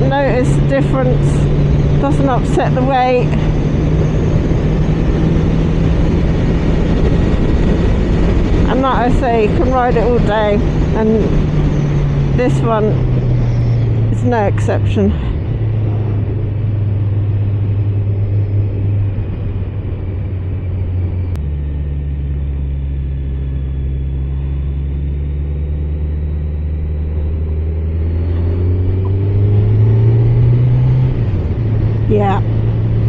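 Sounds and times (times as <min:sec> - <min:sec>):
motorcycle engine running: 0:00.0 - 0:33.0
wind and road noise: 0:00.0 - 0:33.0.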